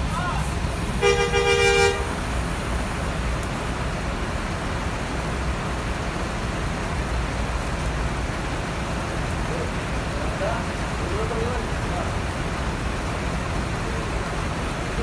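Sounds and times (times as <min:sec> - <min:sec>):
vehicle horn blaring: 0:01.0 - 0:02.2.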